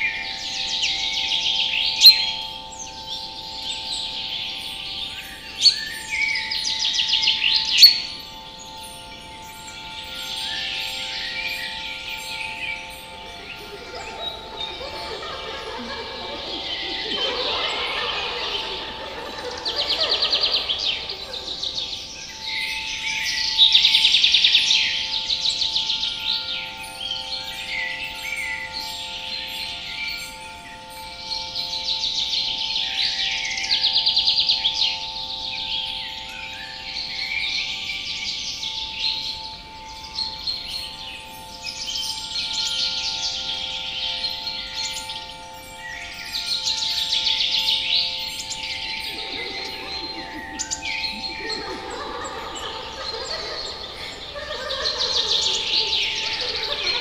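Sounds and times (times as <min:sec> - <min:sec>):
forest birds singing: 0:00.0 - 0:57.0
steady multi-tone hum: 0:12.5 - 0:23.4, 0:48.3 - 0:57.0
chattering voices: 0:13.0 - 0:23.0, 0:48.2 - 0:57.0.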